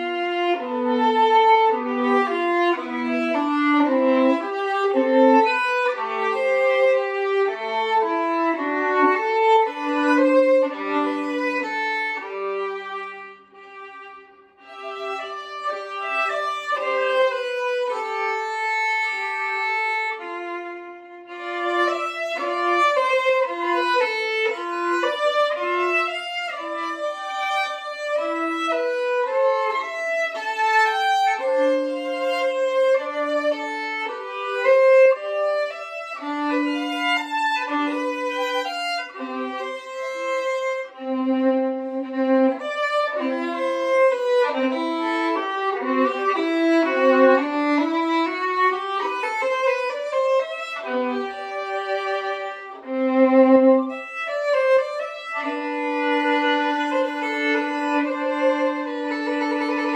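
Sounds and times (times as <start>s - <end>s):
solo violin: 0.0s - 59.9s.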